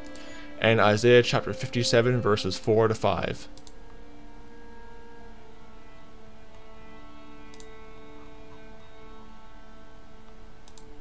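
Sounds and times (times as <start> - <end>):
faint clicks: 0.0 - 0.4, 3.5 - 4.0, 7.5 - 7.7, 10.2 - 10.9
soft sustained background music: 0.0 - 11.0.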